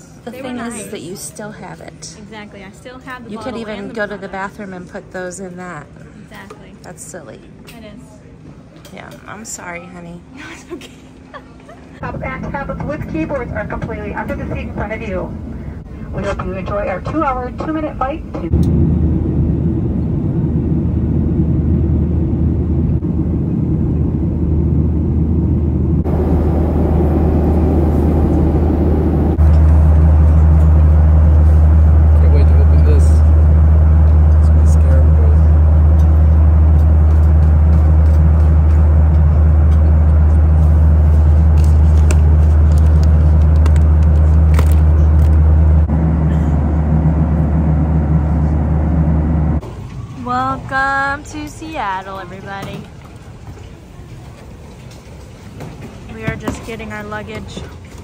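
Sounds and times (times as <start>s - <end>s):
jet engine cabin rumble: 10.9s - 50.1s.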